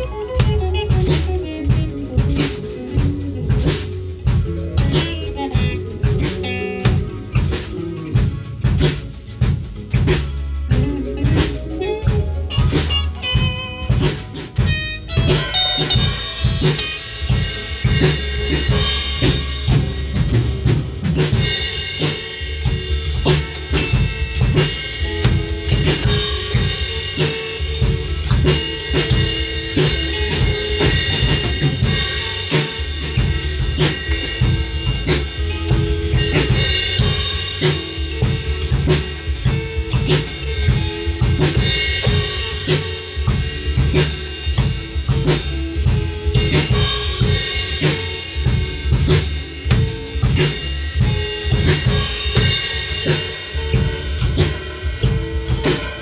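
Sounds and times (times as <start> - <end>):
drum kit beat: 0.0 - 56.0
electric guitar chords: 0.0 - 56.0.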